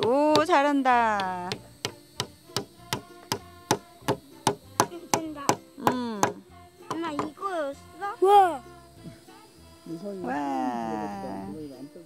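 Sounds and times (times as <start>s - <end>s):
hammer striking nail into wood: 0.0s - 0.6s, 1.2s - 7.4s.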